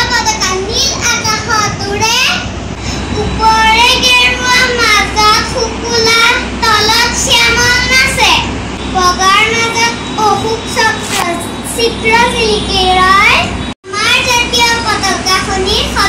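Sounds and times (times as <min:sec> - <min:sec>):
girl singing: 0:03.0 - 0:06.1.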